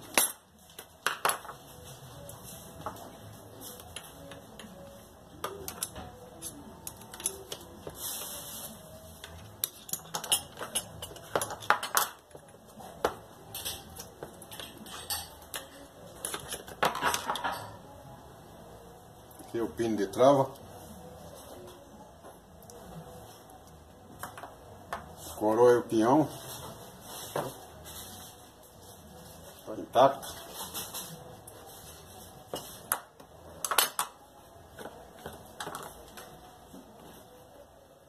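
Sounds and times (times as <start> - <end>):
metal parts clicking and clinking: 6.8 - 7.6, 9.2 - 12.2.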